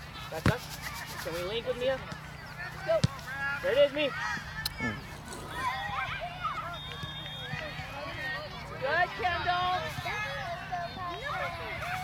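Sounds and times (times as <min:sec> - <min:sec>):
young voices shouting: 0:03.5 - 0:07.2.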